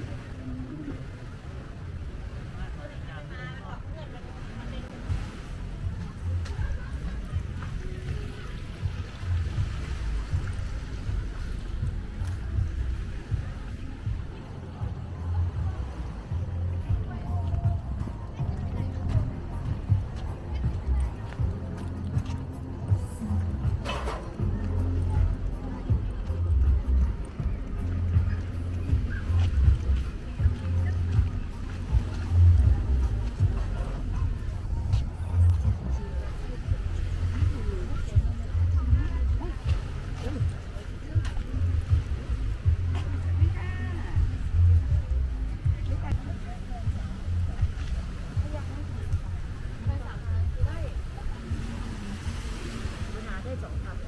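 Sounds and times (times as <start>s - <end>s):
faint voices of people: 0.0s - 54.0s
wind rumble on microphone: 0.0s - 54.0s.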